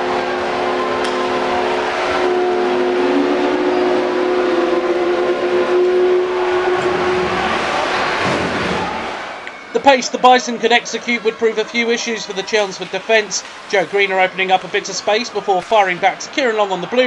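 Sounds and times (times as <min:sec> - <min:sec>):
crowd cheering: 0:00.0 - 0:17.0
goal horn chord: 0:00.0 - 0:17.0.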